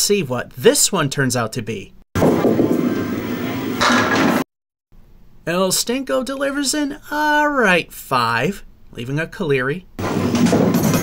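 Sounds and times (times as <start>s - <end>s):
pins clattering: 10.0s - 11.0s.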